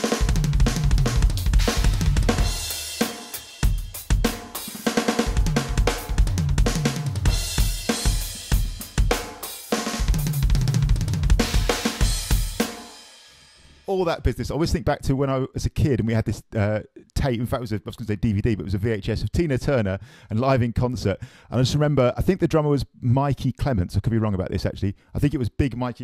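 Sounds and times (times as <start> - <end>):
electronic drum fills: 0.0 - 13.0.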